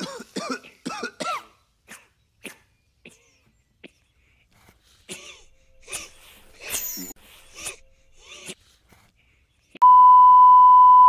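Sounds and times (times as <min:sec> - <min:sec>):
steady test-tone beep: 0:09.8 - 0:11.0.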